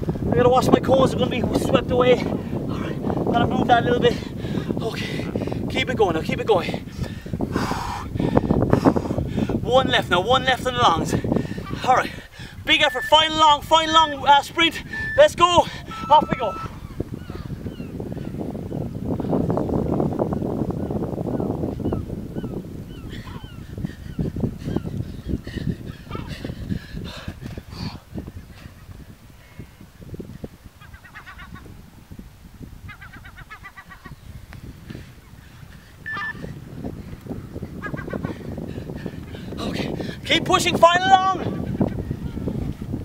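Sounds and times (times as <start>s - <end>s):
wind rumble on microphone: 0.0s - 43.0s
birds honking: 12.7s - 18.4s, 35.2s - 36.5s.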